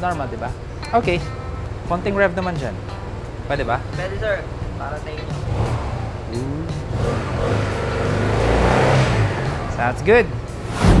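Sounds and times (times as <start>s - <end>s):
scooter engine revving: 3.1s - 10.0s.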